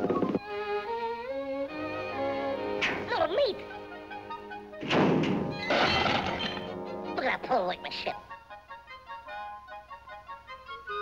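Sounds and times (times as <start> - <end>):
orchestral music: 0.4 - 11.0
sudden thunk: 4.8 - 6.4
breaking crashing clatter: 4.8 - 6.7.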